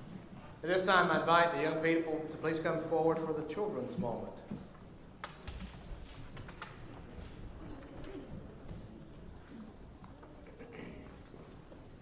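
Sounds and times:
faint murmur of voices: 5.4 - 12.0.

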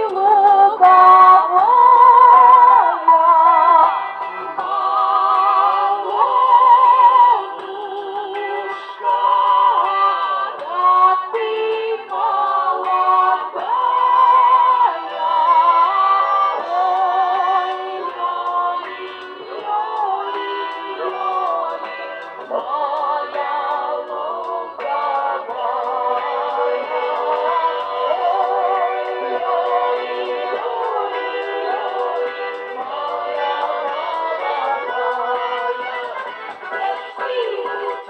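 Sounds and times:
accordion: 0.0 - 38.0
balalaika: 0.0 - 38.0
women singing with vibrato: 0.0 - 38.0.

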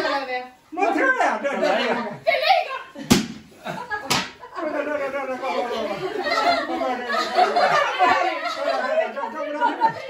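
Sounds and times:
head smacking floor: 3.1 - 4.4.

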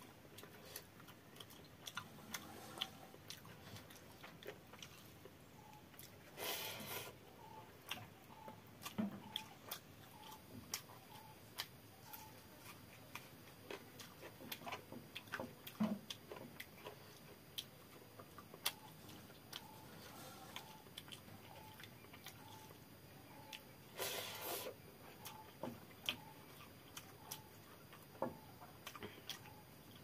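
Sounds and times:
chewing with mouth clicks: 0.0 - 30.0.

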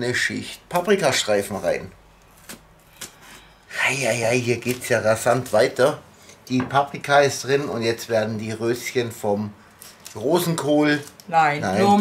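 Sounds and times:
person speaking: 10.2 - 12.0.

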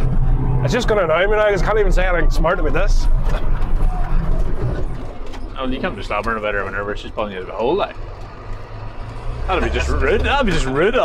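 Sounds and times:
tractor diesel engine rumbling: 0.0 - 11.0.

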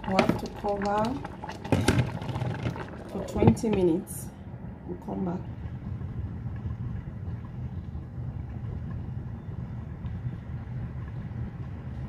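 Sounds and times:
woman's voice: 3.2 - 4.3, 4.9 - 5.5.

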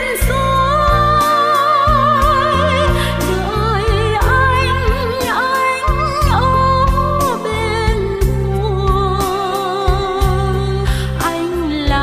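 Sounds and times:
person singing with vibrato: 0.0 - 12.0.

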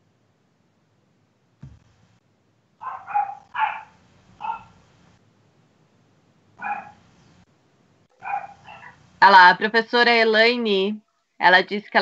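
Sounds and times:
dog barking: 2.8 - 4.8, 6.6 - 7.0, 8.1 - 9.0.

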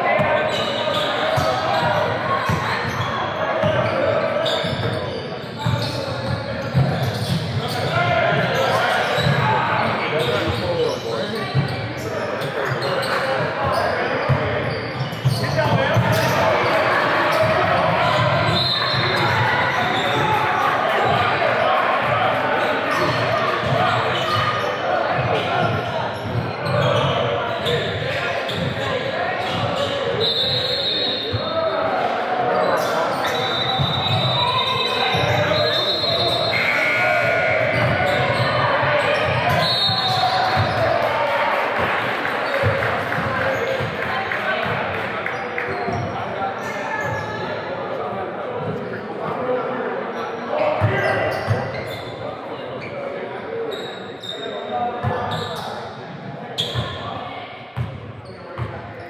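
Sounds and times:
indistinct shouting and chatter: 0.0 - 59.0
balls bouncing on hardwood court: 5.6 - 8.4.

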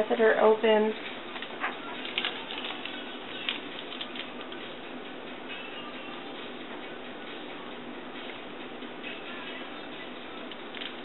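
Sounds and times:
package crinkling: 1.3 - 4.5.

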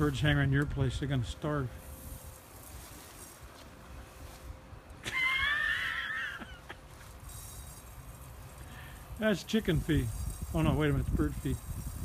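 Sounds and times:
faint steady hum: 0.0 - 12.0
wind rumble on microphone: 9.6 - 12.0.

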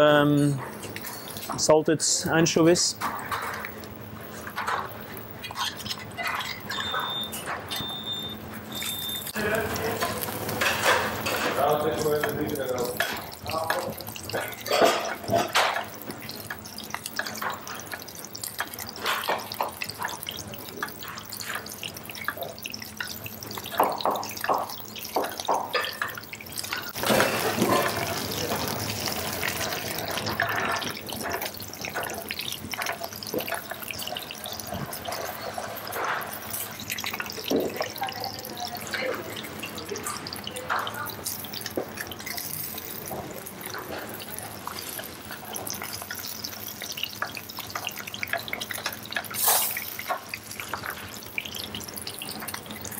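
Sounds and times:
fish sizzling in oil in a pan: 3.1 - 52.9
fork and spoon scraping a pan: 5.4 - 7.9.

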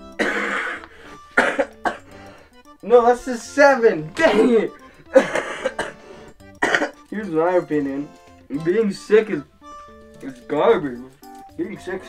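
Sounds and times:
man coughing: 0.2 - 0.8, 1.4 - 2.1, 4.2 - 6.0, 6.6 - 7.0.

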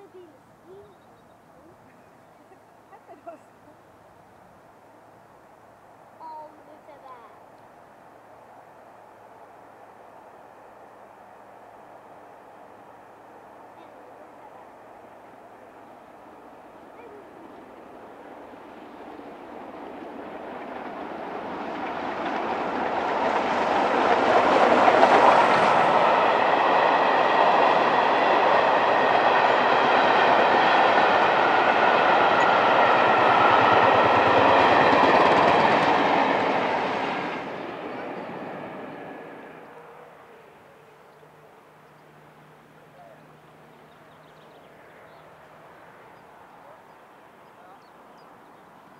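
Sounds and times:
steam train passing: 0.0 - 48.9
wheels ringing on rail: 19.0 - 39.6.

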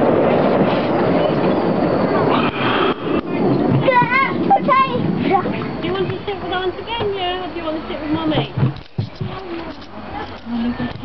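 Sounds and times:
miniature train rumbling: 0.0 - 11.0.

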